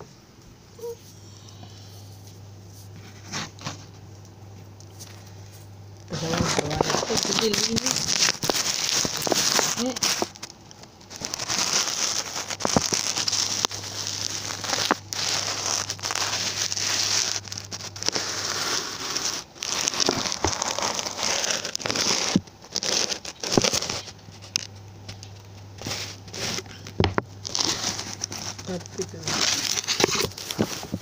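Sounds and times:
steady low hum: 0.0s - 31.0s
dense crackling rustling noise: 2.1s - 31.0s.

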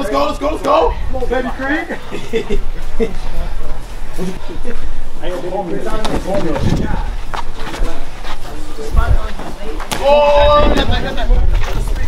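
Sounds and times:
wind rumble on microphone: 6.4s - 7.2s, 10.3s - 12.0s.

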